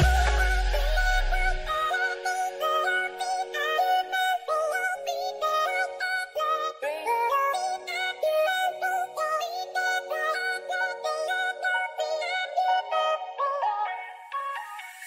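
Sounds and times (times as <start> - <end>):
electronic workout music: 0.0 - 3.4, 13.6 - 15.0.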